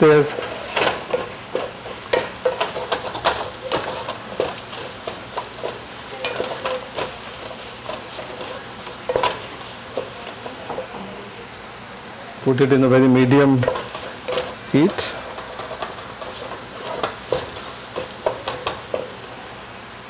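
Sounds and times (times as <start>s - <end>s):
spatula knocking and scraping pot: 0.0s - 11.0s, 13.5s - 19.2s
onions sizzling in oil: 0.0s - 20.0s.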